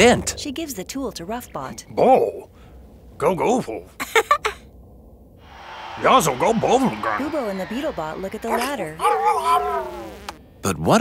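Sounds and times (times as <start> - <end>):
person cheering: 5.5 - 10.3.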